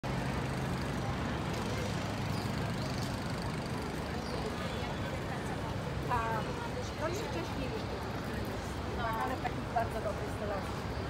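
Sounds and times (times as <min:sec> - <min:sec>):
road traffic drone: 0:00.0 - 0:11.0.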